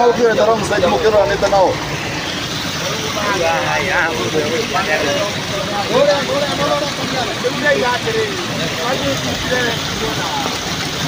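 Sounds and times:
floodwater rushing: 0.0s - 11.0s
people's voices: 0.0s - 11.0s.

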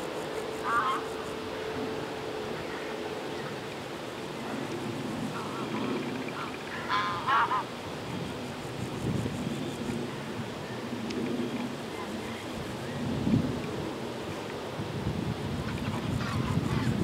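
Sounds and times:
steady background noise: 0.0s - 17.0s
goose honking: 0.6s - 1.1s, 6.3s - 7.7s.

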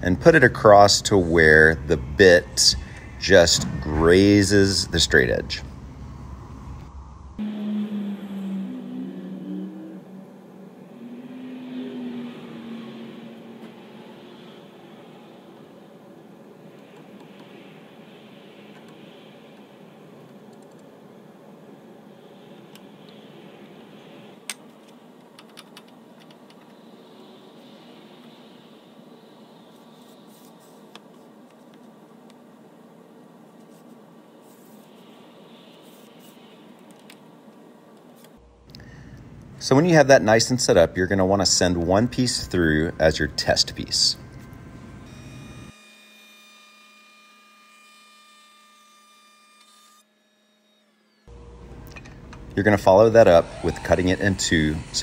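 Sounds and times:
low wavering hum: 0.0s - 20.2s, 38.4s - 45.7s.

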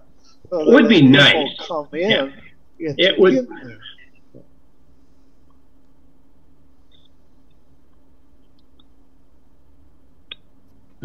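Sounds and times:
low steady microphone hum: 0.0s - 11.0s.

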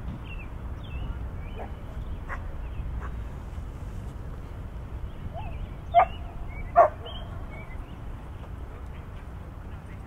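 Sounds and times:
dog barking: 6.0s - 6.2s, 6.8s - 7.2s.

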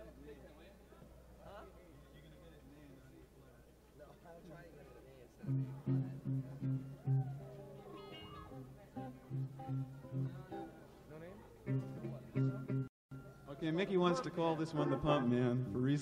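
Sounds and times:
guitar plucking low note: 5.4s - 10.8s, 11.7s - 13.5s.

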